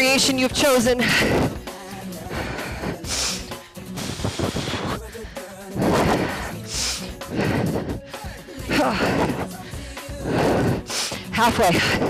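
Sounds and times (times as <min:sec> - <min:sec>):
workout music: 0:00.0 - 0:12.0.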